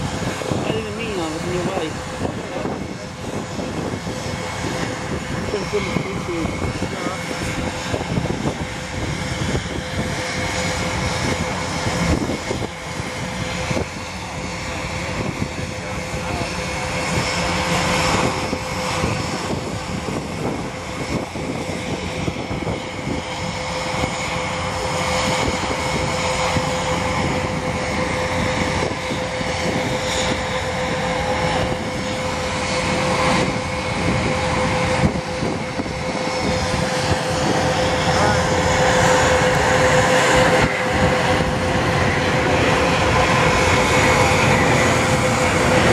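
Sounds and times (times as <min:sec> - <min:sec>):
jet engines rushing and whining: 0:00.0 - 0:45.9.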